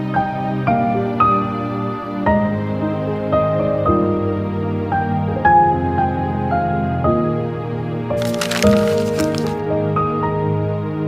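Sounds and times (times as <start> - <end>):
crackling squishy noise: 8.2 - 9.6.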